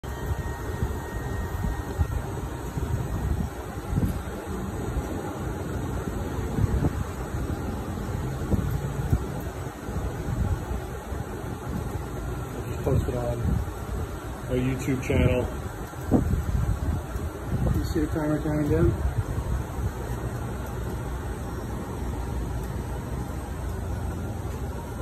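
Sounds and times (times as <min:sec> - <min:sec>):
grill rumbling: 0:00.0 - 0:25.0.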